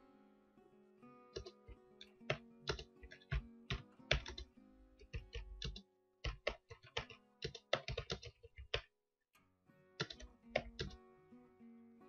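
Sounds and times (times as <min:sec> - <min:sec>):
computer keyboard typing: 0:01.4 - 0:08.9, 0:10.0 - 0:11.0.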